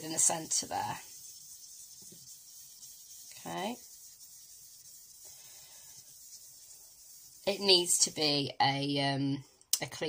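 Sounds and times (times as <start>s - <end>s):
felt pad rubbing on paper: 0.0s - 8.3s.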